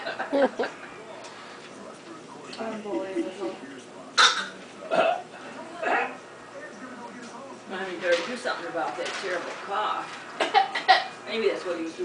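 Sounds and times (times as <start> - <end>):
faint talking: 0.5 - 10.1.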